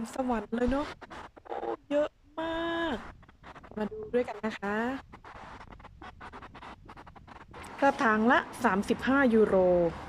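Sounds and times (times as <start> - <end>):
woman speaking: 0.0 - 1.0, 1.7 - 5.2, 7.6 - 10.0
soft scratching and rustling: 0.0 - 10.0.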